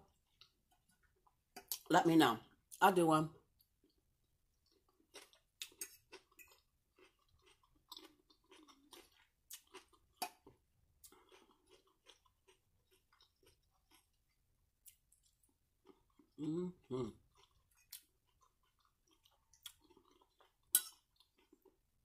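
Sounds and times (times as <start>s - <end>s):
chewing salad greens: 4.6s - 21.9s.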